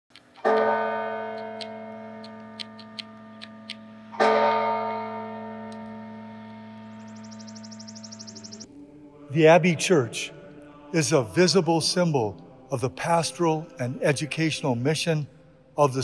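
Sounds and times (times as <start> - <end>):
large bell ringing: 0.4 - 8.5.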